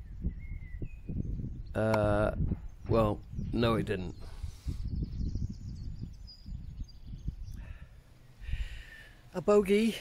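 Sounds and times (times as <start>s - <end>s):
wind rumble on microphone: 0.0s - 9.6s.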